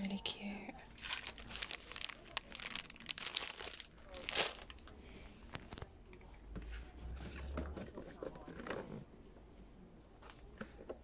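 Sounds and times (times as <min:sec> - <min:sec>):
crinkling and rustling handling: 0:00.1 - 0:09.1.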